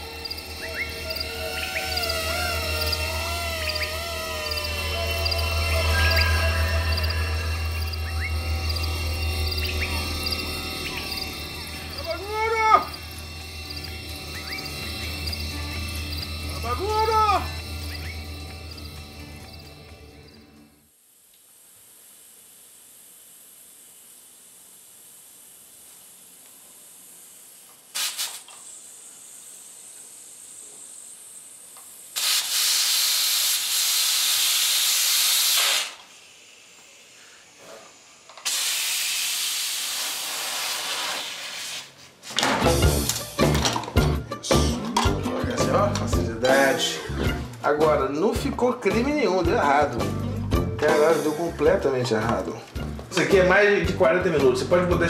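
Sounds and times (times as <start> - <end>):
music: 0.0 - 20.9, 42.4 - 55.0
pressure cooker hissing faintly: 21.2 - 48.4
bursts of escaping steam: 21.5 - 43.4.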